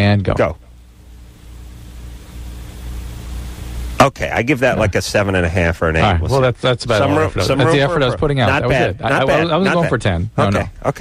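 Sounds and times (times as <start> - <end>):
low electrical hum: 0.0 - 11.0
microphone hiss: 0.0 - 11.0.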